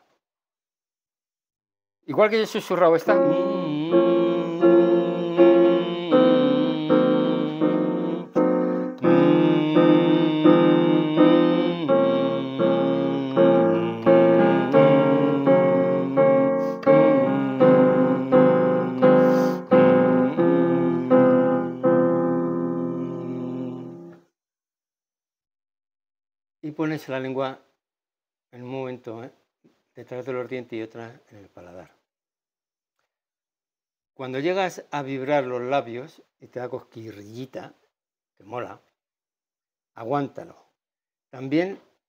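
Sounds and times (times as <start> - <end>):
slow piano chords and melody: 3.1 - 24.1.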